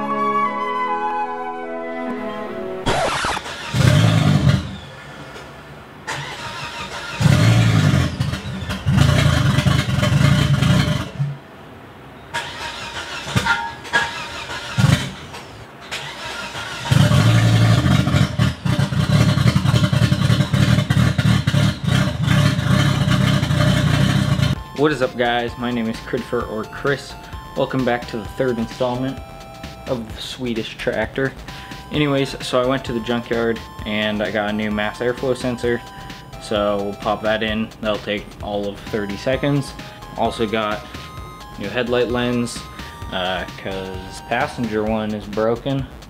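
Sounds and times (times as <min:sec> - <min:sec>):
car engine running: 0:02.9 - 0:05.0, 0:06.0 - 0:11.4, 0:13.2 - 0:26.3.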